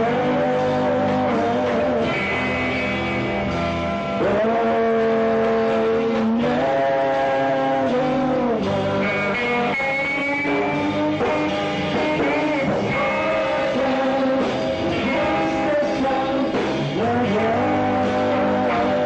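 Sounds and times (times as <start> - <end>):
electric guitar sliding notes: 0.0 - 19.0
rock band playing live: 0.0 - 19.0.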